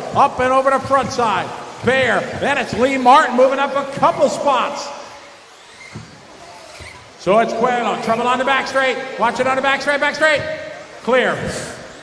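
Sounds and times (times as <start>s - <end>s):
toy car motors and tyres hissing: 5.2s - 7.2s.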